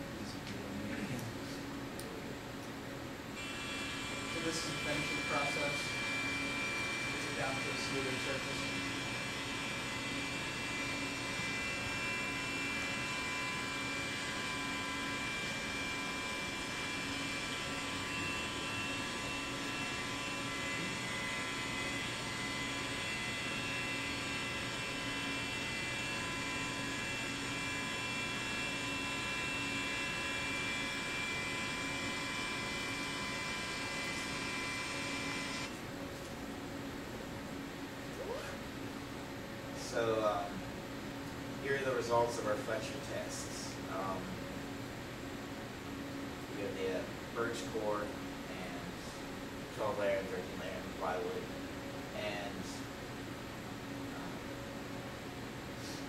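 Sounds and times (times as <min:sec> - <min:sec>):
machine spindle high whine: 0:03.4 - 0:35.9.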